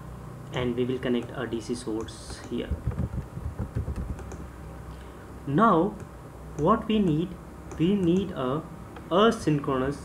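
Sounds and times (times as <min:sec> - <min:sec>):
computer keyboard typing: 0:03.7 - 0:04.5.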